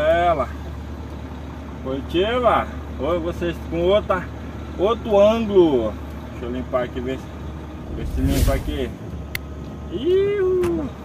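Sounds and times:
diesel engine idling: 0.0s - 9.9s.

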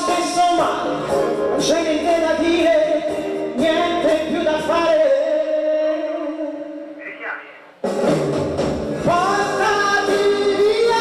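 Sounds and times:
man singing into a microphone: 0.0s - 6.9s, 9.0s - 11.0s
pop backing track: 0.0s - 11.0s.

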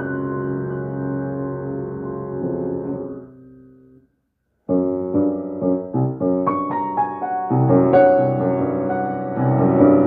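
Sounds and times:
piano chords: 0.0s - 4.0s, 4.7s - 10.0s.

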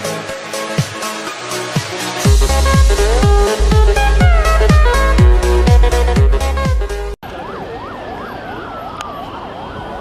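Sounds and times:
yelping siren: 7.2s - 10.0s.

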